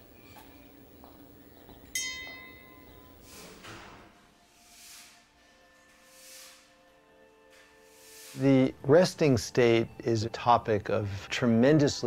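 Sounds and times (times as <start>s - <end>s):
small bell ringing: 1.9s - 3.2s.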